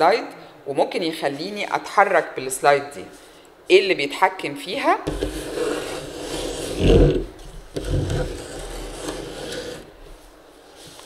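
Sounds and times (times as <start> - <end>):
heavy bumps: 5.1 - 10.0
microphone handling scraping: 5.1 - 10.2.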